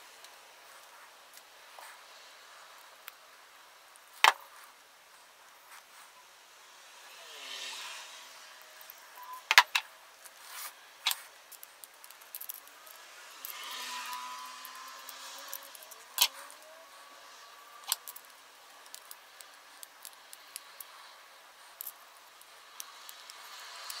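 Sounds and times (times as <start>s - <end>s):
soft handling rustle: 10.2s - 13.0s.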